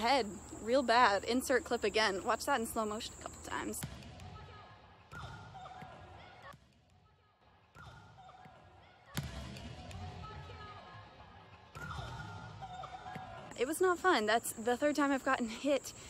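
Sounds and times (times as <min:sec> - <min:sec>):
volleyballs bouncing and hit: 0:01.7 - 0:07.0, 0:07.6 - 0:15.2.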